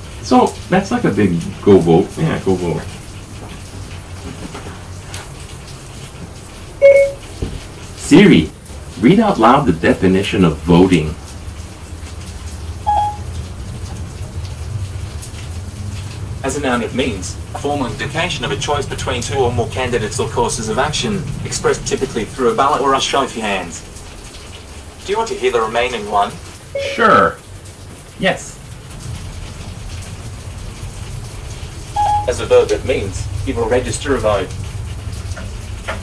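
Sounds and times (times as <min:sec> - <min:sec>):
rain hissing: 0:00.0 - 0:36.0
short electronic beep: 0:06.8 - 0:07.2, 0:12.9 - 0:13.2, 0:26.8 - 0:27.3, 0:32.0 - 0:32.3.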